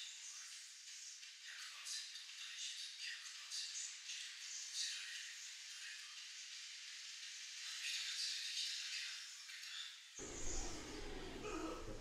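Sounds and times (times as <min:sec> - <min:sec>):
low rumble: 0:10.2 - 0:12.0.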